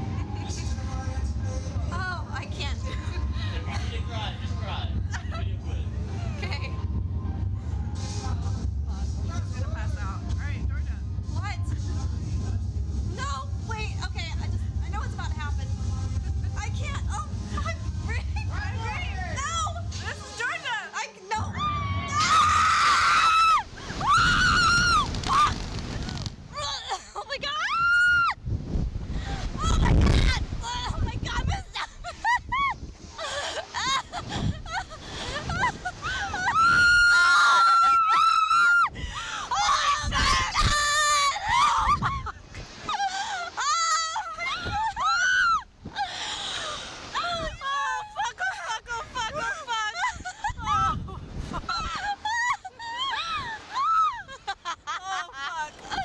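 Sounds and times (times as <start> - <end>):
women screaming: 21.4 - 25.8, 26.6 - 28.4, 35.4 - 46.1, 47.1 - 51.1, 51.7 - 56.0
wind on microphone: 21.4 - 26.7, 27.7 - 43.1, 44.2 - 48.1, 48.8 - 54.4.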